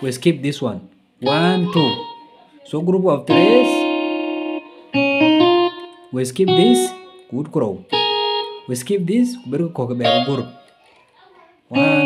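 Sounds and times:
electronic keyboard single notes: 1.2 - 2.4, 3.3 - 10.8, 11.7 - 12.0.

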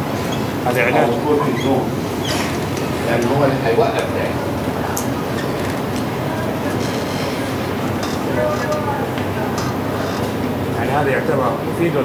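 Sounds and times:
rumbling background noise: 0.0 - 12.0.

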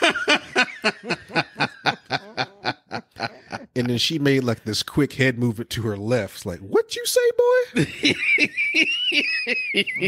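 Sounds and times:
breathy laughter: 0.0 - 3.9.

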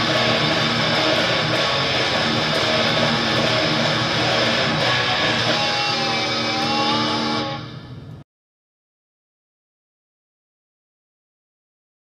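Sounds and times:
distorted electric guitar chord: 0.0 - 8.0.

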